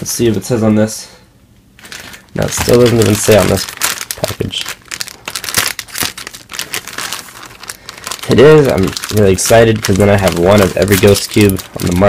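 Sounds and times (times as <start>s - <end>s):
plastic bag crinkling: 1.8s - 12.0s
scissors cutting plastic: 8.2s - 12.0s.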